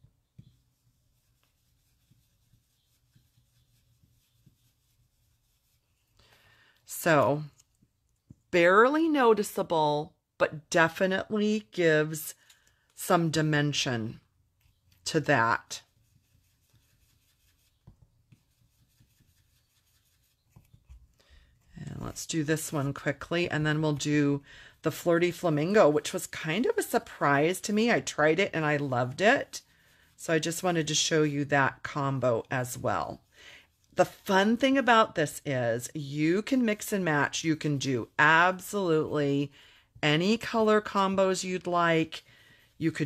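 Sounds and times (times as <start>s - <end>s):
brush rubbing on cardstock: 0.0s - 7.8s, 13.8s - 35.6s, 36.2s - 39.5s, 40.2s - 43.0s.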